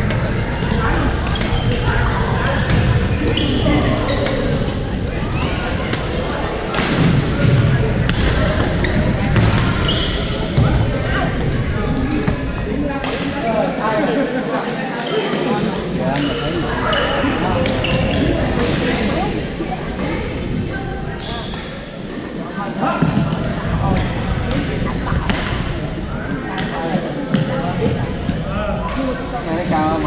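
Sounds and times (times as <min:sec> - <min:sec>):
court noise: 0:00.0 - 0:30.0
echoing background voices: 0:00.0 - 0:30.0
shoe squeak: 0:01.3 - 0:04.6, 0:09.7 - 0:10.6, 0:16.2 - 0:18.4.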